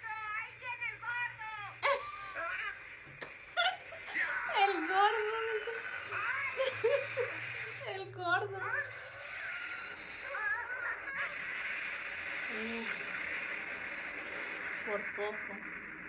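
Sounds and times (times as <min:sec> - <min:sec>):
steady hiss: 0:00.0 - 0:16.0
person chuckling: 0:01.8 - 0:04.6.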